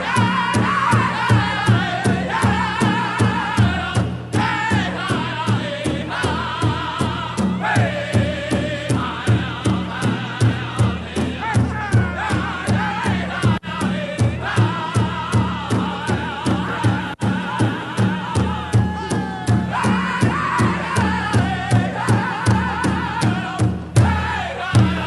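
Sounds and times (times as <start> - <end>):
big drum beating: 0.0 - 25.0
group singing in high voices: 0.0 - 25.0.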